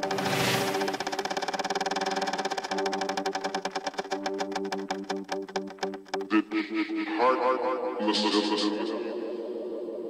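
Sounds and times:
electronic dance music: 0.0 - 6.4.

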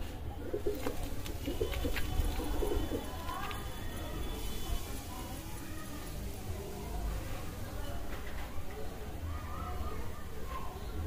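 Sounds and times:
pigeons cooing: 0.5 - 3.1.

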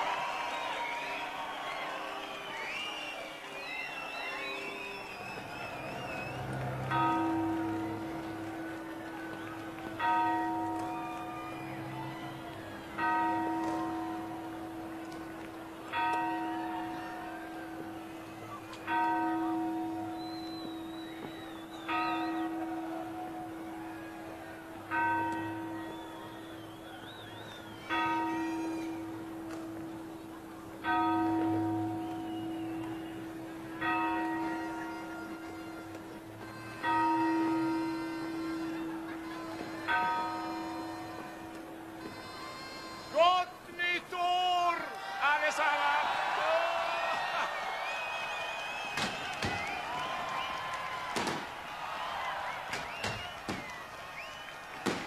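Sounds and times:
church bell tolling: 6.7 - 26.7, 27.8 - 43.7.

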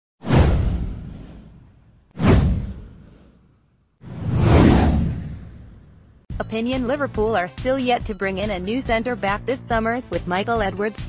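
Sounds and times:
downward whoosh: 4.0 - 6.0
deep low rumble: 4.1 - 6.2.

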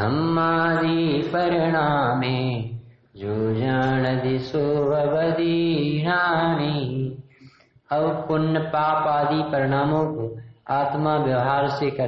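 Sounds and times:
man chanting melodic recitation: 0.0 - 7.3, 7.9 - 12.0.

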